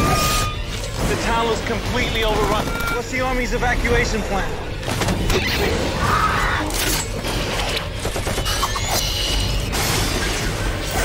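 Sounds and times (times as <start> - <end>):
metallic mechanical sound effects: 0.0 - 11.0
trailer music: 0.0 - 11.0.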